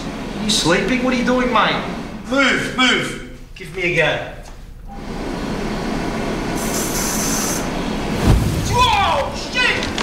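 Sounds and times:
high hiss: 6.6s - 8.7s.

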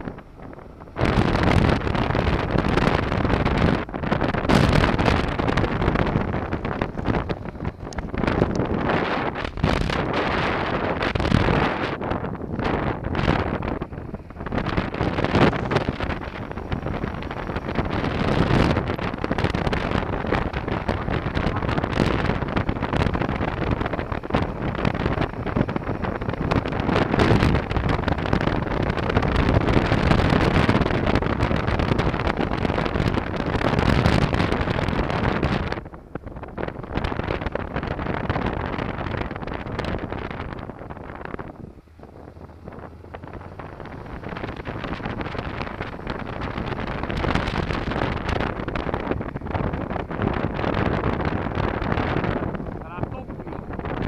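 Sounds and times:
motorcycle engine running: 0.0s - 54.0s
wind rushing over microphone: 0.0s - 54.0s.

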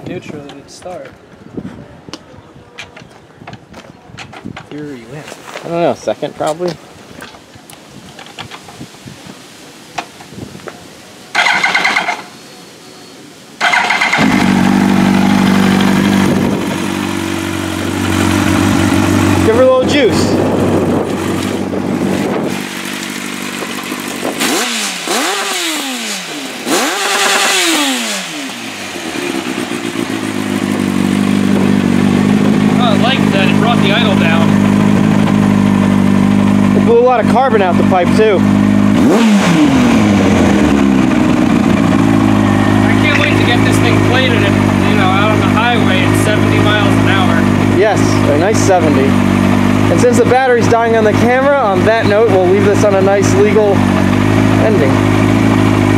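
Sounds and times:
motorcycle engine idling and revving: 11.3s - 12.6s, 13.6s - 55.9s.

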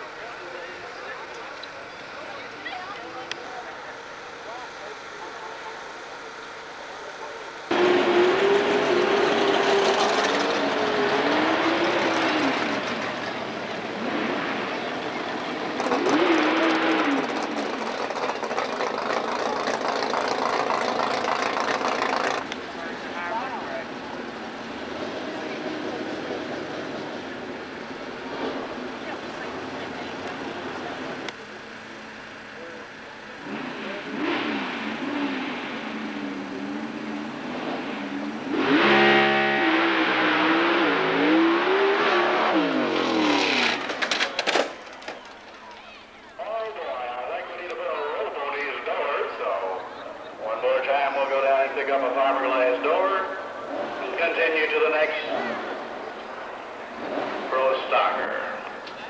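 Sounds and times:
drag car engine revving: 0.0s - 45.6s, 46.5s - 59.0s
engine cracks: 15.1s - 22.8s, 43.0s - 45.9s.

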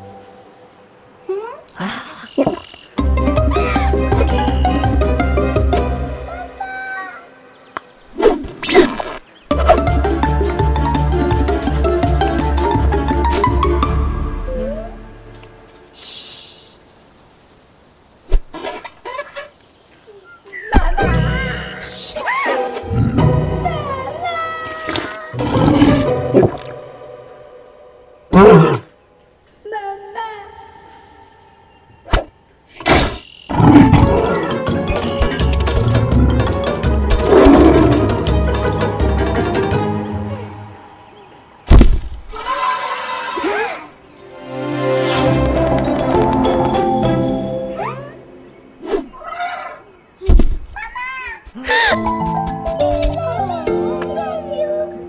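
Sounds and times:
cartoon music: 9.5s - 15.2s, 45.2s - 48.3s, 51.9s - 55.0s
loud animal-like cry: 42.3s - 43.9s
soft thud: 50.2s - 50.6s.

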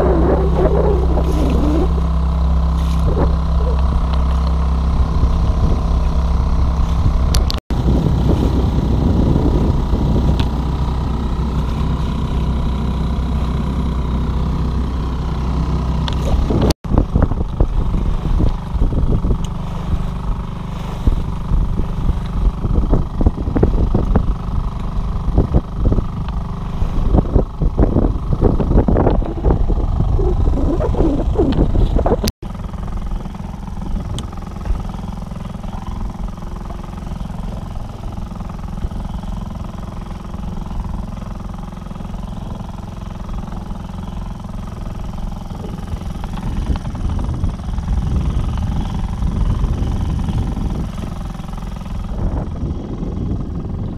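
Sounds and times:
outboard motor running: 0.0s - 53.9s
water splashing along hull: 0.0s - 53.9s.

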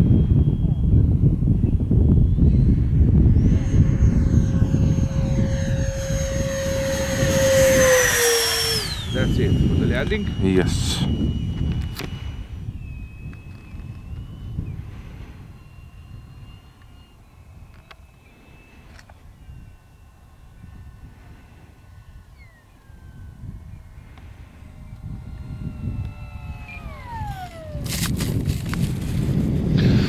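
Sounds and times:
low wind rumble: 0.0s - 30.0s
model jet ducted fan whining: 0.0s - 30.0s.

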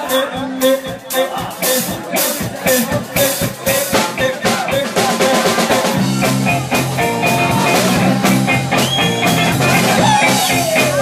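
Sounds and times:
bass guitar riff: 0.0s - 11.0s
drum kit strikes: 0.0s - 11.0s
electric guitar lines: 4.9s - 11.0s.

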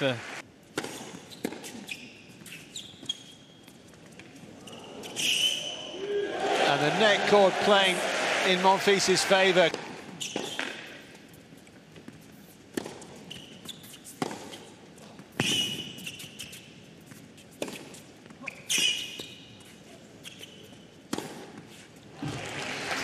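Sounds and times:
tennis racket hitting ball: 14.1s - 14.6s, 21.1s - 21.6s.

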